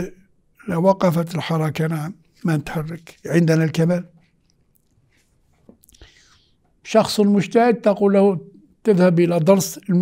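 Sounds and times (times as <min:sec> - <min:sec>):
man speaking: 0:00.0 - 0:04.2, 0:06.8 - 0:10.0
soft breath in: 0:06.0 - 0:06.6.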